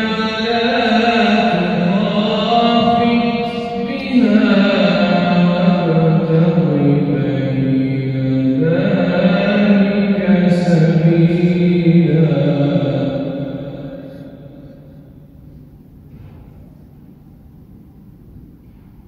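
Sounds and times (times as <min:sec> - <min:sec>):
man reciting melodically: 0:00.0 - 0:15.1.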